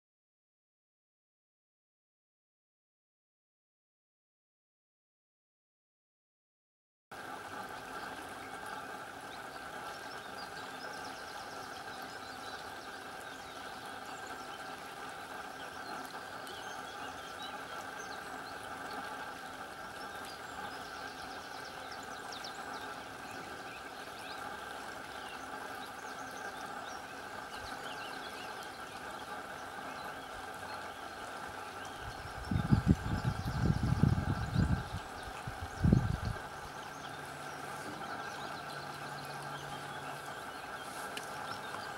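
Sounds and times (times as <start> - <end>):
stream water rushing: 7.2 - 41.9.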